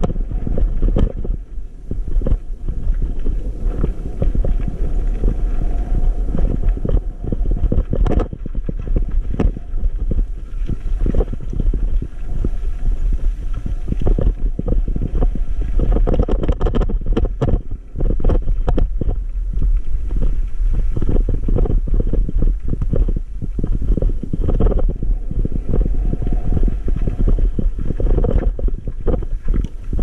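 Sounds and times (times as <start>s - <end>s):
wind buffeting microphone: 0.0s - 30.0s
bike rattling over stones: 2.2s - 26.0s.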